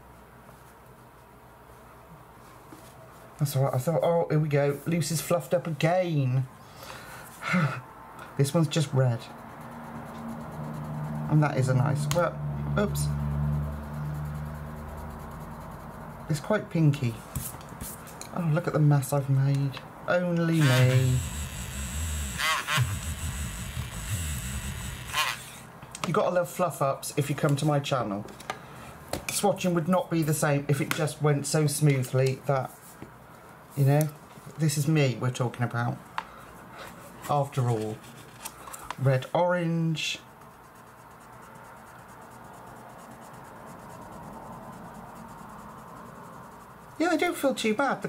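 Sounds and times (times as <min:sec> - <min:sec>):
pencil scribbling on card: 0:08.6 - 0:16.6, 0:20.5 - 0:25.6, 0:37.2 - 0:47.7
paper handling noise: 0:36.8 - 0:39.2.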